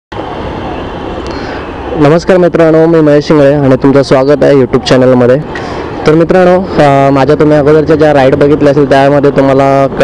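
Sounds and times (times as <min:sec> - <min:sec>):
passing road traffic: 0:00.1 - 0:10.0.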